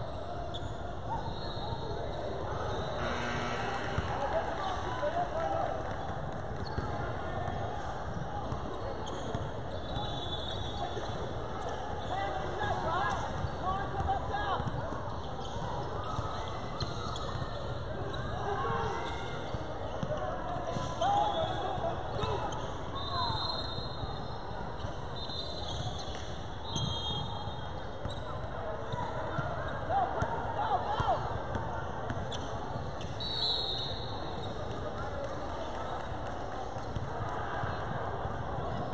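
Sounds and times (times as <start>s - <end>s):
people shouting in a gym: 28.2s - 32.0s.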